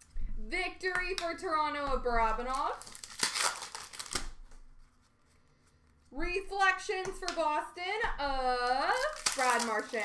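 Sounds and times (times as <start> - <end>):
trading cards rustling: 2.2 - 6.1, 8.4 - 10.0.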